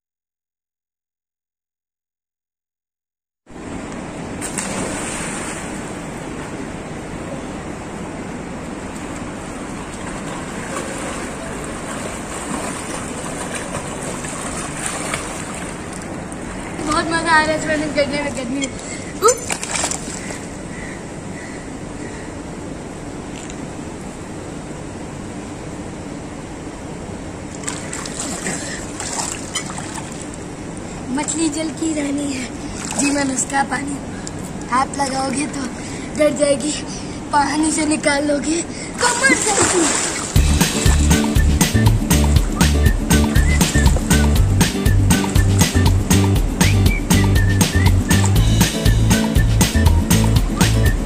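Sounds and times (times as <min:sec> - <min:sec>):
steady rushing noise: 0:03.5 - 0:18.5, 0:39.0 - 0:51.0
steady background hiss: 0:03.5 - 0:46.7
pool water splashing: 0:03.6 - 0:18.2, 0:18.8 - 0:21.0, 0:27.2 - 0:35.5, 0:38.8 - 0:51.0.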